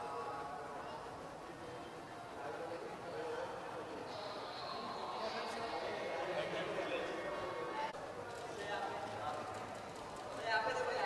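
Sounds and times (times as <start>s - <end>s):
indistinct background voices: 3.0s - 10.4s.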